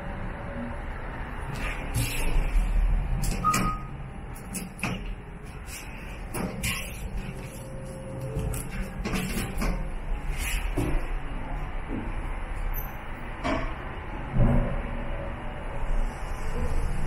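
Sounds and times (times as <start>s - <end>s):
elevator low rumble: 0.0s - 17.0s.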